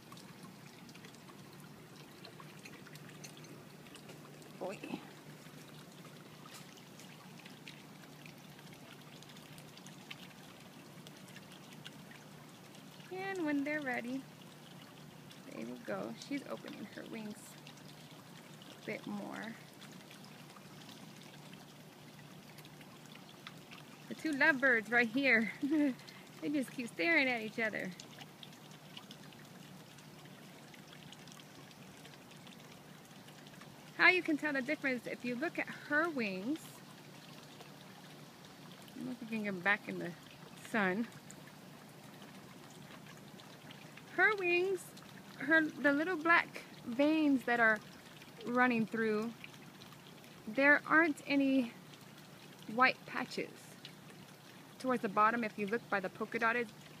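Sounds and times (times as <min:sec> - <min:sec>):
drip-like ticks: 0:00.0 - 0:57.0
faint outdoor background noise: 0:00.0 - 0:57.0
faint trickling water: 0:00.0 - 0:57.0
low steady hum: 0:00.0 - 0:57.0.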